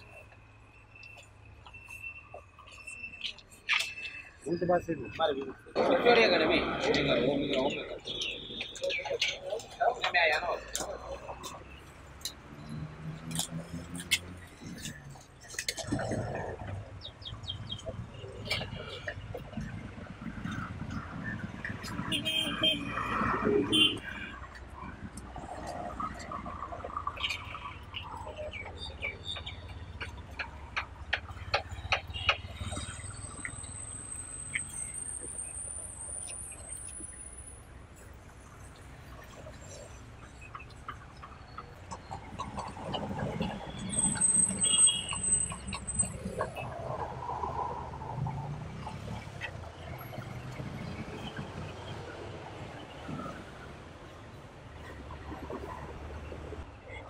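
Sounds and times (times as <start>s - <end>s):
traffic hum: 0.0s - 57.0s
voices murmuring: 1.8s - 33.6s.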